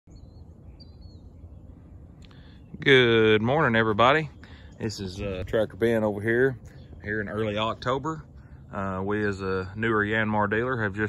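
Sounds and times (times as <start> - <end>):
high bird calls: 0.1 - 9.3
low background rumble: 0.1 - 11.0.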